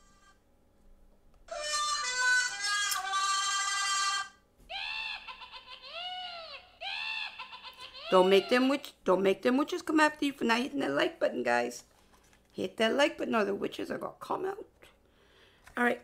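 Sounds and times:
shrill cackling voice: 1.5s - 8.9s.

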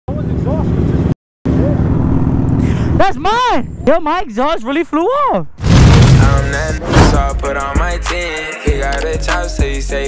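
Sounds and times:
motorcycle engines running: 0.1s - 3.0s.

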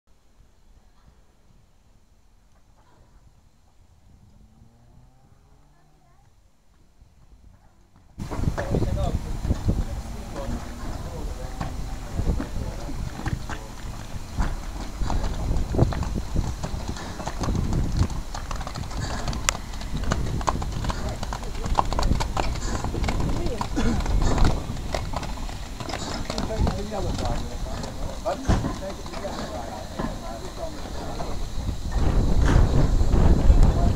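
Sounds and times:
people talking: 5.7s - 6.4s, 7.6s - 16.1s, 20.8s - 24.8s, 25.9s - 33.9s
steam locomotive knocks and clanks: 8.2s - 33.9s.

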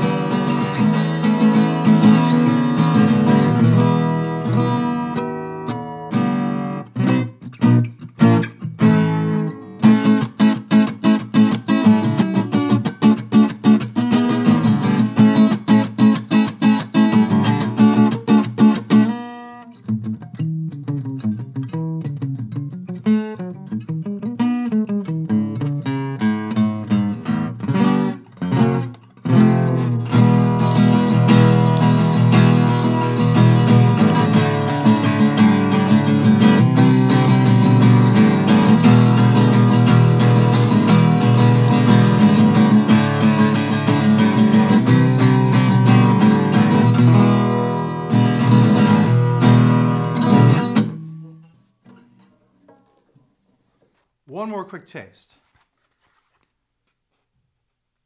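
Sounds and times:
acoustic guitar playing: 0.0s - 55.3s.

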